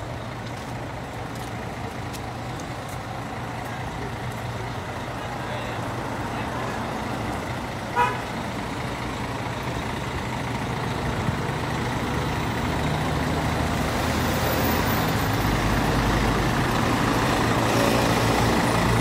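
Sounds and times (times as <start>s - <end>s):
buses engine hum: 0.0s - 19.0s
street traffic noise: 0.0s - 19.0s
vehicle horn toot: 8.0s - 8.2s.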